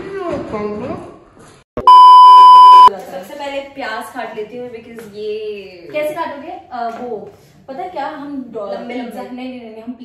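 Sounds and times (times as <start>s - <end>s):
loud bleep tone: 1.8s - 2.9s.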